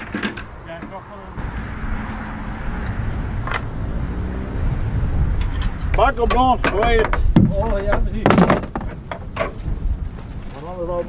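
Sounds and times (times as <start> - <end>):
wind buffeting microphone: 1.3 - 11.0
twigs cracking: 9.5 - 11.0.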